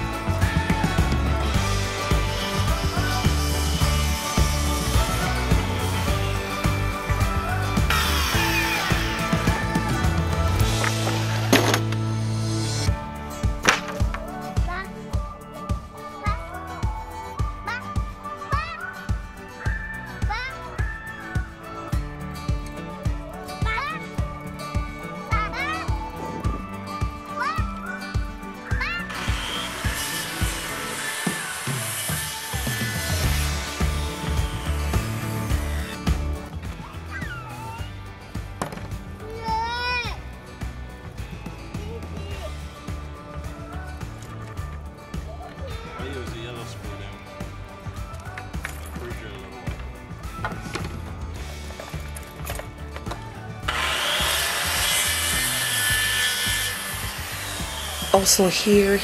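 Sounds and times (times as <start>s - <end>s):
background music with steady beat: 0.0s - 59.0s
circular saw cutting wood: 1.4s - 12.9s, 29.0s - 36.4s, 53.6s - 59.0s.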